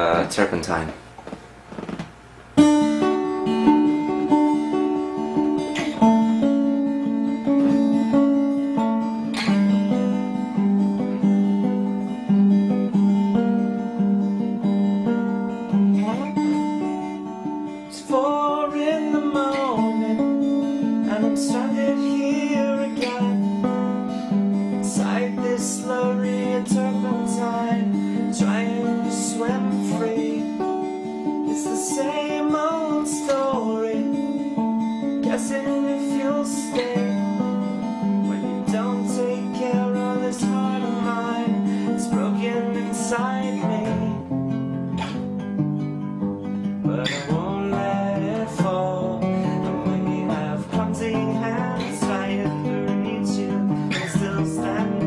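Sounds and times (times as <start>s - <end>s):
acoustic guitar picked chords: 0.0s - 55.0s.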